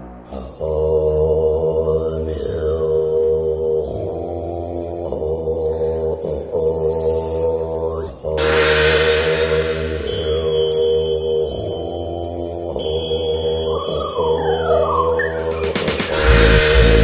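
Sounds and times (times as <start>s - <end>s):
low chanted mantra: 0.2s - 17.0s
deep bass drone: 8.4s - 10.8s, 14.8s - 17.0s.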